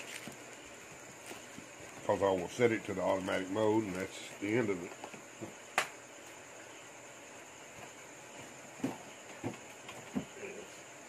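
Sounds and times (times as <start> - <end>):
background hiss: 0.0 - 11.0
faint high whine: 0.0 - 11.0.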